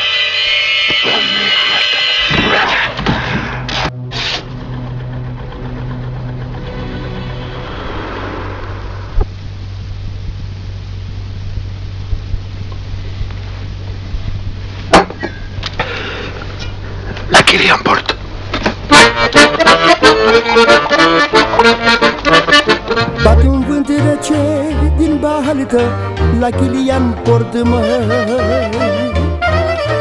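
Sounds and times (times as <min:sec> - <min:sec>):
music: 0:00.0 - 0:08.8, 0:18.9 - 0:30.0
low mechanical hum: 0:00.0 - 0:30.0.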